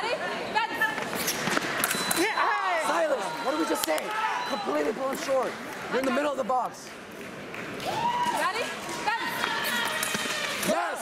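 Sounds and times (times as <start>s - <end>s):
voices shouting and yelling: 2.2s - 6.4s.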